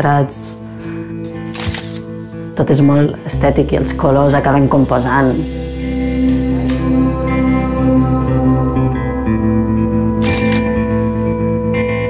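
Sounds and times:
slow background music: 0:00.0 - 0:12.0
camera shutter: 0:01.5 - 0:02.1, 0:10.2 - 0:11.0.

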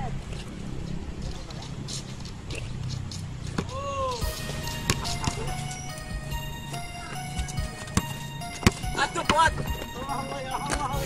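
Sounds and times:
background music with held tones: 0:04.2 - 0:11.0.

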